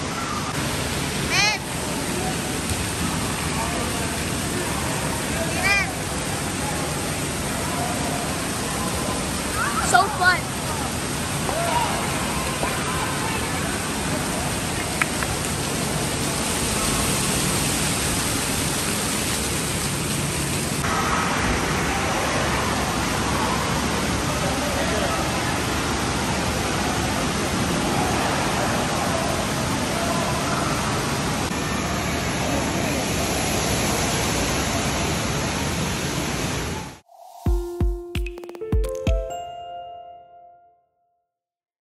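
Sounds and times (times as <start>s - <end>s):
rushing splashing water: 0.0s - 37.0s.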